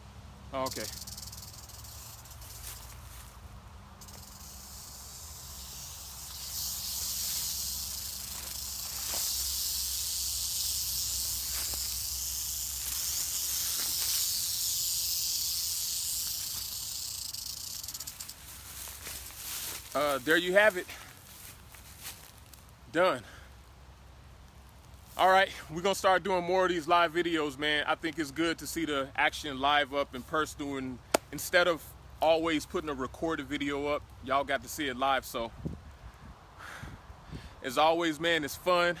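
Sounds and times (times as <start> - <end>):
rattlesnake rattling buzz: 0.0 - 22.7, 25.0 - 35.5, 37.6 - 39.0.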